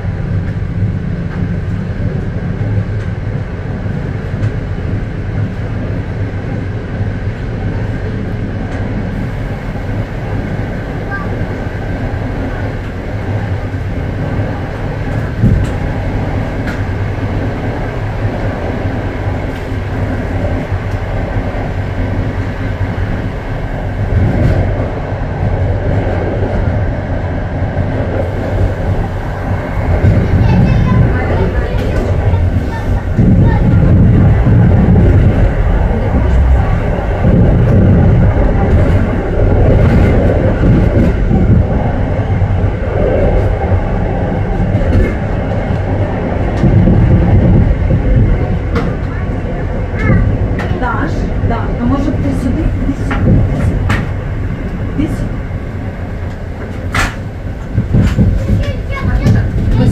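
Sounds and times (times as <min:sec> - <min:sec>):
train rumbling along track: 0:00.0 - 0:59.9.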